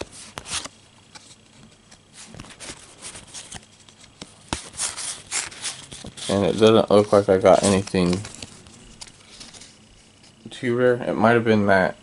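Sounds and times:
paper cards being leafed through: 0.0s - 10.5s.

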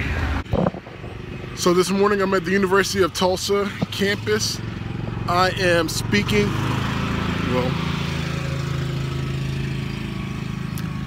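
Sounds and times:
people talking: 1.6s - 4.6s, 5.3s - 6.5s.

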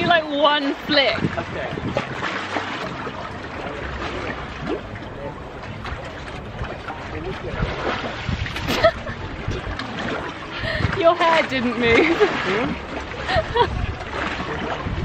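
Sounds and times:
seawater lapping on rocks: 0.0s - 15.0s
swimmer splashing: 0.0s - 15.0s.

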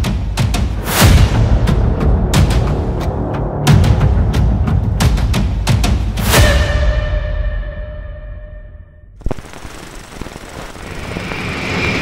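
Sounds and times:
crackling rattle: 9.2s - 12.0s.

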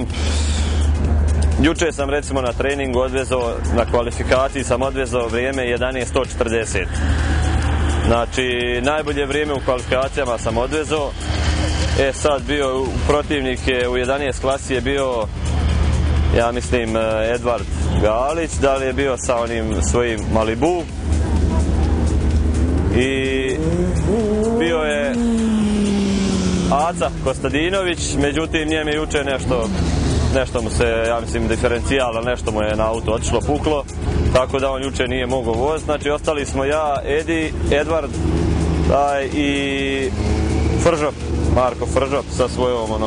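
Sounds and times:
man talking: 0.0s - 0.3s, 1.6s - 7.0s, 8.0s - 11.2s, 11.9s - 15.3s, 16.3s - 21.0s, 22.9s - 38.2s, 38.8s - 40.2s, 40.8s - 43.0s
race car engines rumbling: 0.0s - 43.0s
engine revving up: 5.8s - 13.8s, 19.4s - 34.5s, 35.8s - 43.0s.

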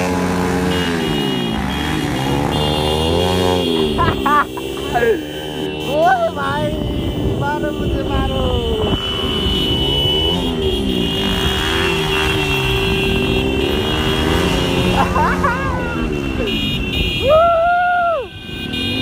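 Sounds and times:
horn sounding: 0.0s - 19.0s
motorcycle engines passing: 0.0s - 19.0s.

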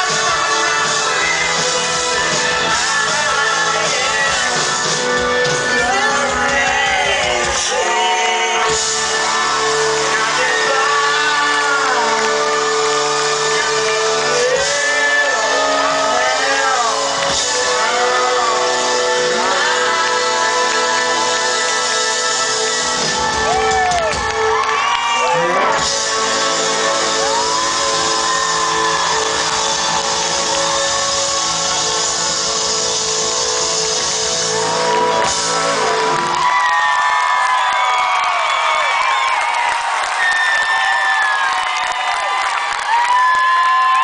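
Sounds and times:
crowd cheering and whooping: 0.0s - 44.0s.

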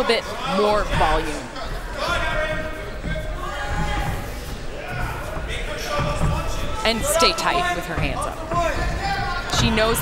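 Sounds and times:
voices shouting in a hall: 0.0s - 10.0s.

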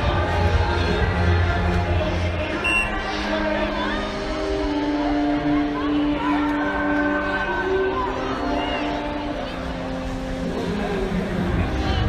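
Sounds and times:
music over public address: 0.0s - 12.0s
stadium crowd chatter: 0.0s - 12.0s.

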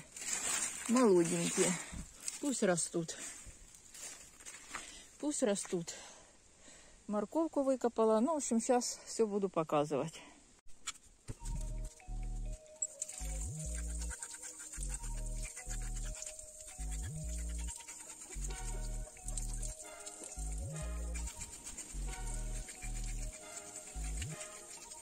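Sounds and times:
electronic music with bass line: 11.4s - 14.2s, 16.7s - 17.7s, 18.4s - 23.4s.

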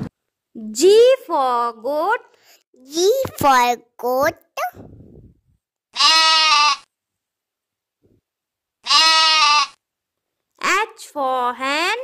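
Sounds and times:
goat bleating: 5.9s - 6.9s, 8.8s - 9.8s.

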